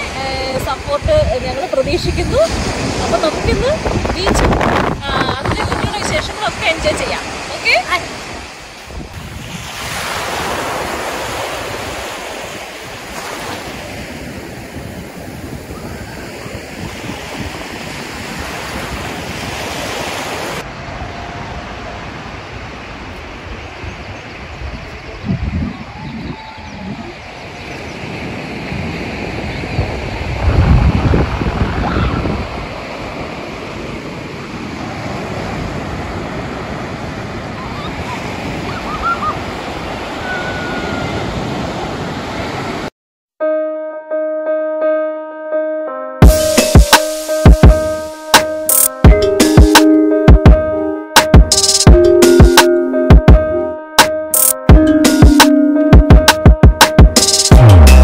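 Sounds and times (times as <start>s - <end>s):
wind buffeting microphone: 0.0s - 13.2s, 13.8s - 42.8s
surf washing onto beach: 0.0s - 42.9s, 46.2s - 49.0s.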